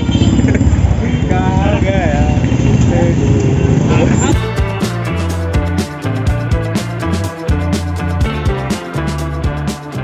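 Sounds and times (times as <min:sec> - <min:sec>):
motorbike engine rumble: 0:00.0 - 0:04.8
road noise: 0:00.0 - 0:08.3.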